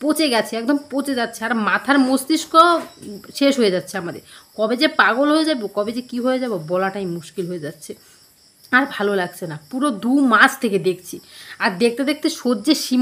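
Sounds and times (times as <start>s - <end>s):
woman talking: 0.0s - 8.1s, 8.7s - 13.0s
faint high-pitched tone: 0.6s - 7.7s.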